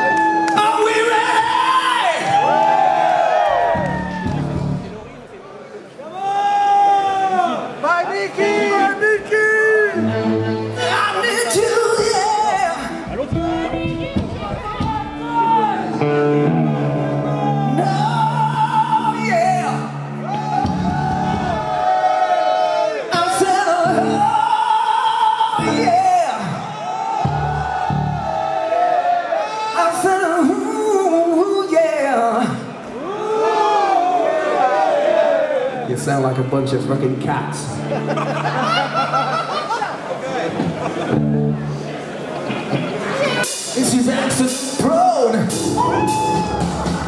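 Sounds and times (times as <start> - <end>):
crowd cheering and whooping: 0.0 - 4.9, 6.0 - 7.8, 14.4 - 19.1, 20.1 - 23.4, 25.8 - 29.9, 32.9 - 35.9, 45.5 - 47.0
rock singer holding long notes: 8.3 - 28.5, 43.2 - 47.0.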